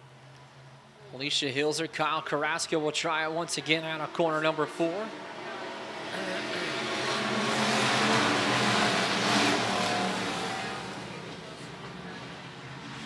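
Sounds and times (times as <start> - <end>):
race car engines accelerating: 2.0 - 13.0.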